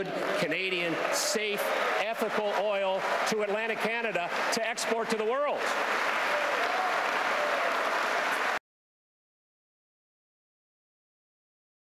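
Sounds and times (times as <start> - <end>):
audience applauding: 0.0 - 8.6.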